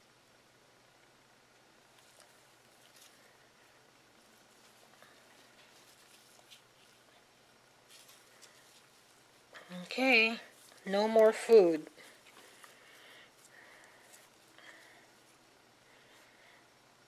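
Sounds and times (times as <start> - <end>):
hand rustling through moist bedding: 1.9 - 16.4.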